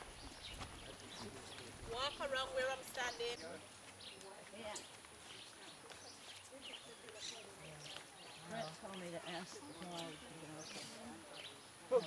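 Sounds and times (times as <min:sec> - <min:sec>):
people talking low: 0:00.0 - 0:12.0.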